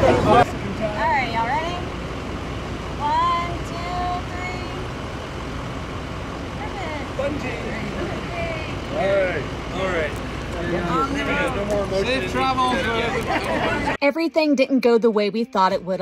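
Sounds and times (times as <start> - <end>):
group of people talking: 0.0 - 5.0, 6.4 - 16.0.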